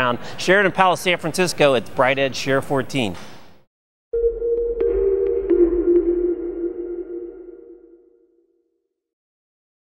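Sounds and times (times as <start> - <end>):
electronic music sting: 4.2 - 8.3.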